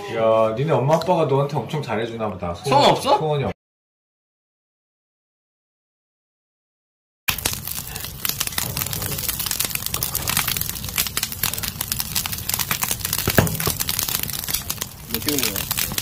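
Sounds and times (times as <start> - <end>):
charcoal fire crackling and popping: 7.3 - 16.0.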